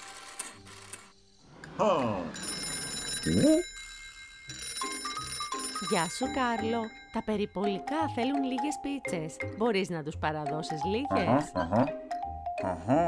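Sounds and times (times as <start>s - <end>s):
cartoon telephone ringing: 1.9s - 8.8s
light background music: 4.5s - 13.0s.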